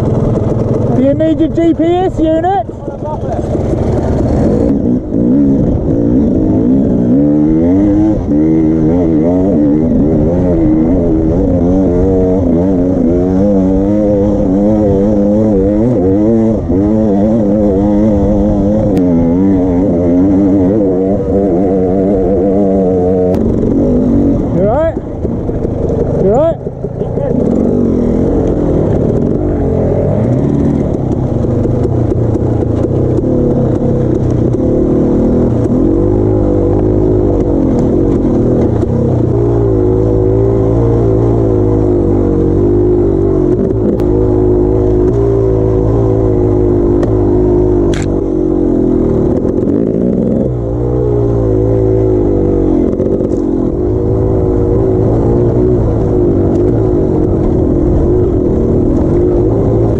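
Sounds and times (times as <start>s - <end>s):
dirt bike engine revving: 0.0s - 59.9s.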